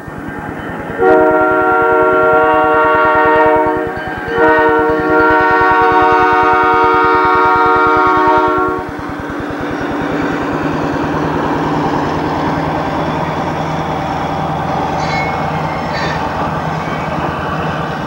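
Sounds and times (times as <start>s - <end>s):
diesel engine rumbling: 0.0s - 18.0s
locomotive air horn blasts: 1.0s - 9.0s.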